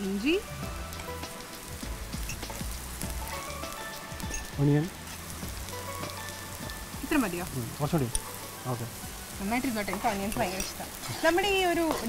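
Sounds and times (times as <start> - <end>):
garlic sizzling in oil: 0.0 - 12.0.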